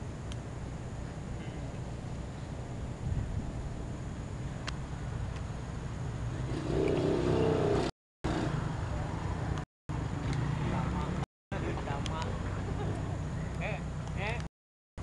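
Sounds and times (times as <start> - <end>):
steady low rumble: 0.0 - 7.9.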